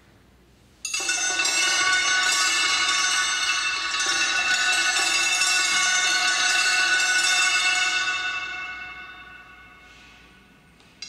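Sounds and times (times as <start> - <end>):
bell-like metallic tone: 0.9 - 11.0.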